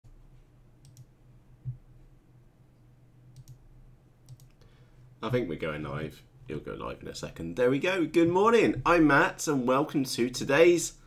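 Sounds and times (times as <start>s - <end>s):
faint computer clicks: 0.8s - 1.8s, 3.4s - 3.6s, 4.2s - 4.6s.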